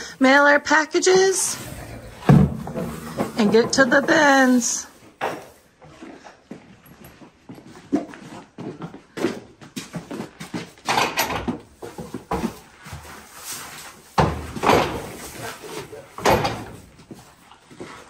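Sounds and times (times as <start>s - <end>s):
hay being handled: 1.1s - 5.2s, 12.3s - 17.2s
hooves clopping on concrete: 1.3s - 18.0s
plastic bucket knocks and scuffs: 2.0s - 4.6s, 11.5s - 13.1s, 14.1s - 15.4s.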